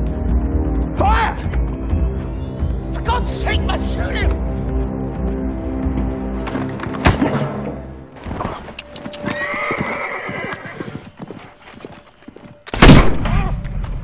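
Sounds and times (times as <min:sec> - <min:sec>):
low music drone: 0:00.0 - 0:09.3
hoofbeats: 0:03.9 - 0:12.8
horse whinnying: 0:08.4 - 0:11.1.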